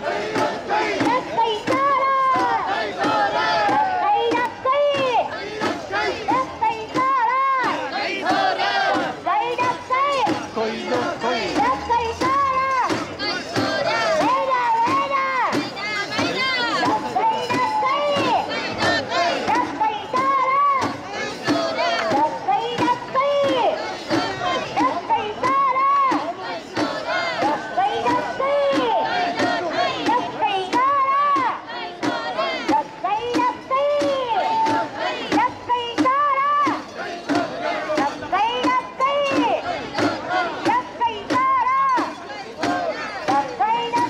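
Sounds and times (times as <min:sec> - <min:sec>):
crowd shouting a chant: 0:00.0 - 0:44.0.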